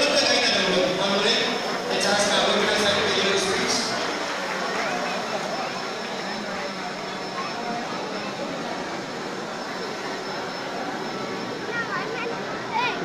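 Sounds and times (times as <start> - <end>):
crowd chatter in a hall: 0.0 - 13.0.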